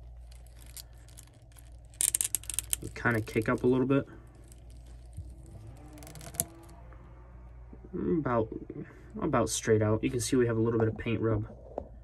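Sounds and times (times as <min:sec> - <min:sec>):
small plastic clicks and rustles: 0:00.0 - 0:06.8.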